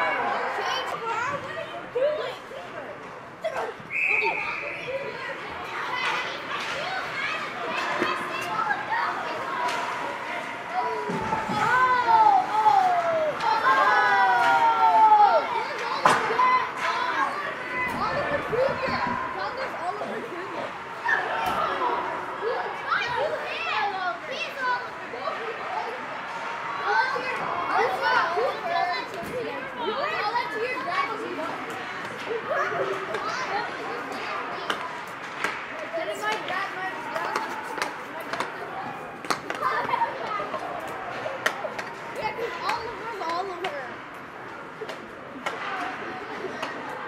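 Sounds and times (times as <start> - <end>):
echoing voices in rink: 0.0 - 47.0
children shouting: 3.4 - 20.2, 20.9 - 35.4, 36.0 - 43.8
hockey sticks and puck clacking: 5.9 - 10.2, 15.6 - 18.4, 31.6 - 44.0, 44.7 - 46.9.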